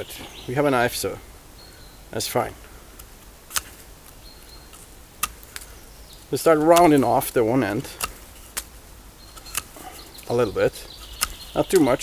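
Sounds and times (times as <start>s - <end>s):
quiet outdoor background: 0.0s - 12.0s
knife carving wood: 3.0s - 3.9s, 4.7s - 5.7s, 6.4s - 12.0s.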